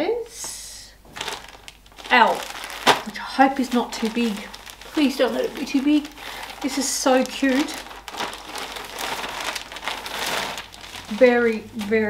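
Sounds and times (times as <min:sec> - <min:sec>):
plastic packaging crinkling: 0:01.0 - 0:12.0.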